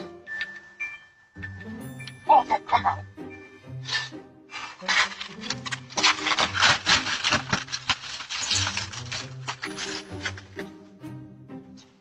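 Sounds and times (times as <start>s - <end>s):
rustling and scraping: 3.7s - 10.8s.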